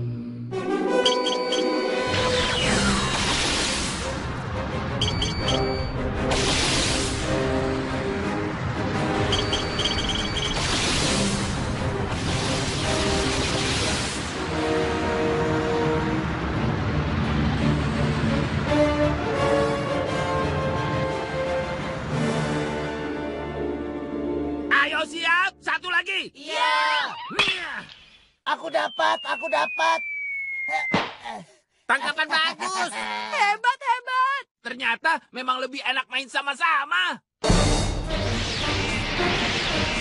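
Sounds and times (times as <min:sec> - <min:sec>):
cartoon background music: 0:00.4 - 0:03.2, 0:04.0 - 0:15.8, 0:37.4 - 0:40.0
electronic beeps: 0:01.0 - 0:02.9, 0:05.0 - 0:06.0, 0:09.2 - 0:10.6, 0:28.8 - 0:31.0
missile launch whoosh: 0:06.2 - 0:07.6, 0:10.5 - 0:14.6
falling whistle: 0:28.8 - 0:31.2.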